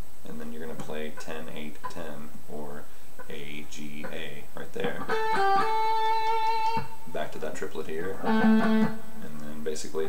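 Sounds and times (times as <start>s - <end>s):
electric guitar picking: 5.0s - 7.1s, 8.0s - 9.3s.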